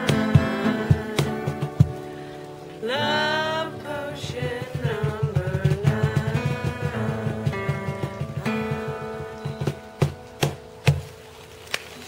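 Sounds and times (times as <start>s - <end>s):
cajon hand-drum beat: 0.0s - 2.2s, 4.2s - 11.2s
acoustic guitar chords: 0.0s - 11.3s.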